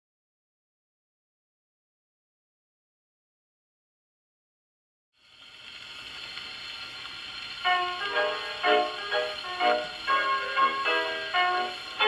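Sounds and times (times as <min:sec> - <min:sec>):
record surface hiss: 0:05.2 - 0:12.0
piano on a phonograph record: 0:06.7 - 0:12.0.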